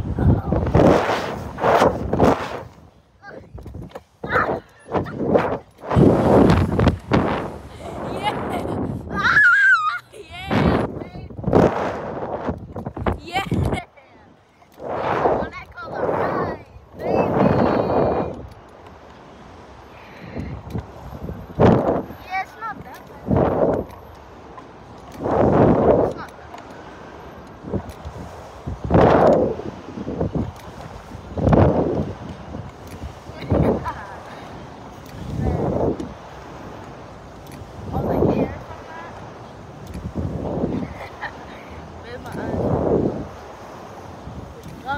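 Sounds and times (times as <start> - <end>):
wind rushing across microphone: 0.0 - 44.9
riders screaming and shouting: 9.1 - 10.2.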